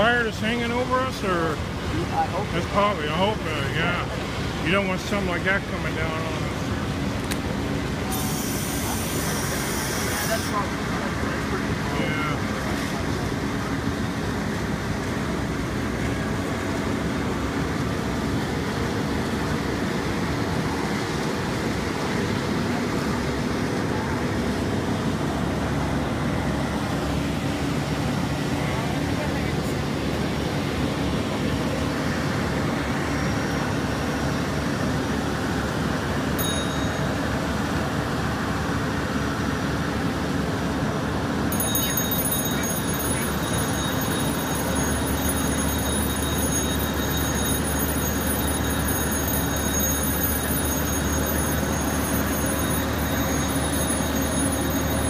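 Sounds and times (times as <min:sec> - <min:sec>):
diesel engine droning: 0:00.0 - 0:55.0
indistinct voices: 0:41.6 - 0:47.7.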